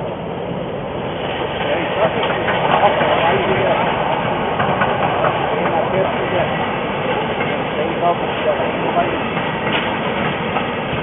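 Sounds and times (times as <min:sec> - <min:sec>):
coaches rolling on rails: 0:00.0 - 0:11.0
steam locomotive passing: 0:00.0 - 0:11.0.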